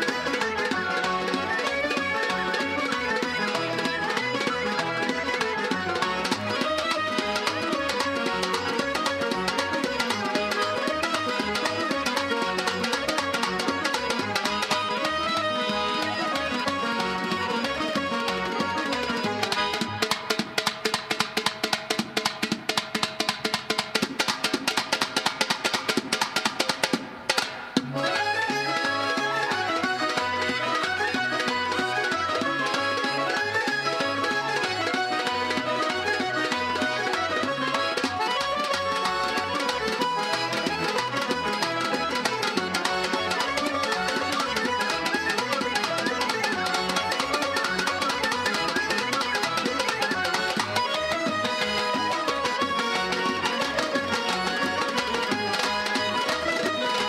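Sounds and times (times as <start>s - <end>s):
fast folk dance music: 0.0s - 57.0s.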